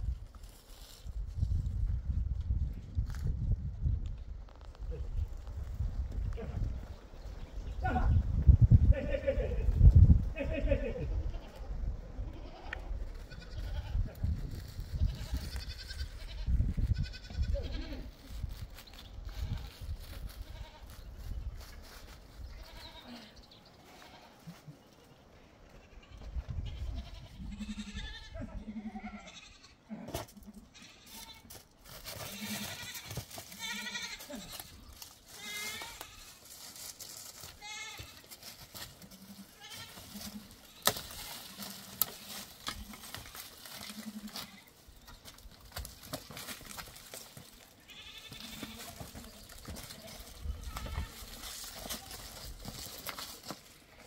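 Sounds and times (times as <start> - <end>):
goats bleating: 8.8 - 14.2, 15.0 - 18.3, 19.3 - 19.8, 20.4 - 20.9, 22.6 - 24.6, 25.7 - 31.6, 32.2 - 36.6, 37.4 - 45.4, 46.2 - 54.0.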